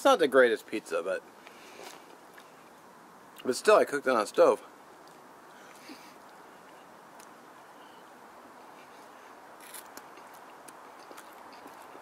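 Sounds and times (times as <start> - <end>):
low steady hiss: 0.0 - 12.0
person chewing pizza: 9.6 - 12.0.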